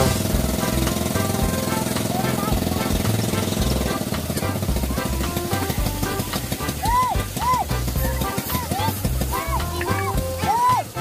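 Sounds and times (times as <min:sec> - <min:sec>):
boat engine chugging: 0:00.0 - 0:11.0.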